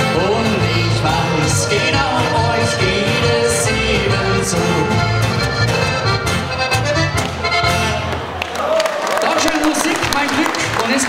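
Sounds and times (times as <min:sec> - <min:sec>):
button accordion: 0:00.0 - 0:08.2
acoustic guitar: 0:00.0 - 0:08.4.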